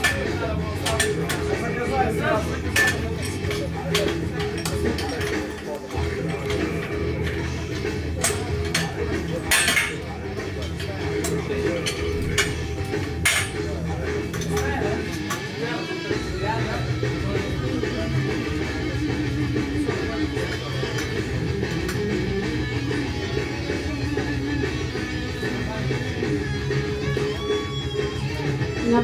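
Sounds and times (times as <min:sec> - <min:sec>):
background music: 0:00.0 - 0:29.0
room chatter: 0:00.0 - 0:29.0.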